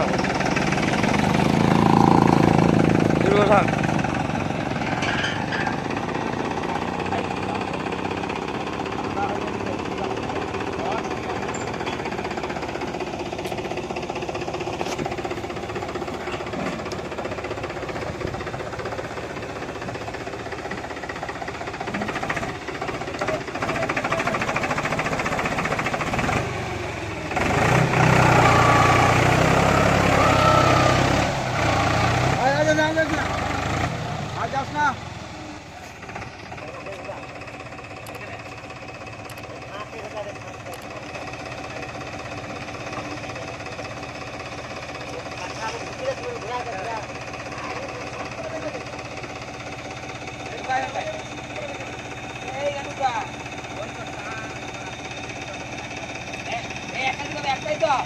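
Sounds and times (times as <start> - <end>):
tractor diesel engine running: 0.0 - 58.0
men's voices: 1.4 - 4.1.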